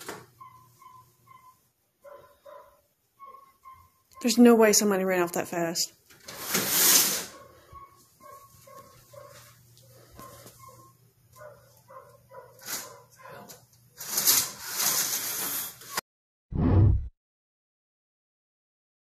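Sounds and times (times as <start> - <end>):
distant dog barking: 0.4 - 4.4, 7.2 - 13.6
short low boom: 16.6 - 17.1.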